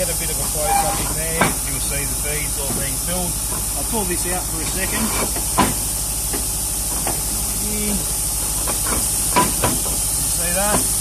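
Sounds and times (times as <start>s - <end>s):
blowing machine hiss and hum: 0.0s - 11.0s.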